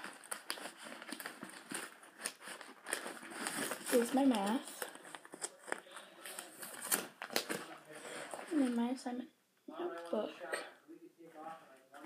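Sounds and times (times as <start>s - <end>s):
papers rustling and crinkling: 0.0s - 9.0s.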